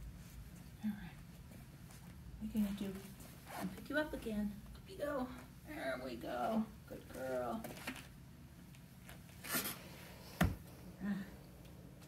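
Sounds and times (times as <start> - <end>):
office chair thump: 10.4 - 10.6.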